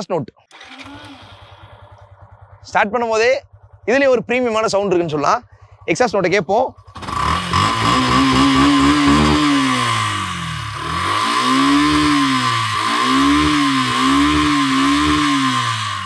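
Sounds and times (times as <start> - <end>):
motorcycle engine revving: 0.5 - 16.0.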